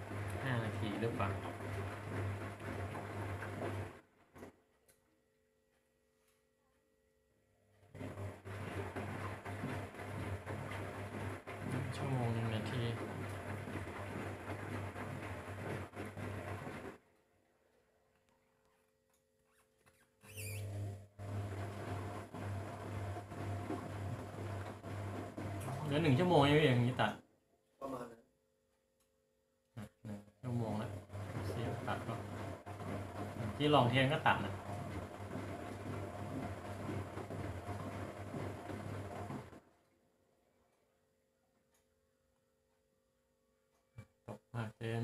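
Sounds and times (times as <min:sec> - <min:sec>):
washing machine drum tumbling: 0:00.0 - 0:04.4, 0:08.0 - 0:17.0, 0:21.1 - 0:27.1, 0:30.5 - 0:39.6
washing machine motor humming: 0:00.0 - 0:04.8, 0:07.6 - 0:18.8, 0:20.2 - 0:27.2, 0:29.8 - 0:40.8.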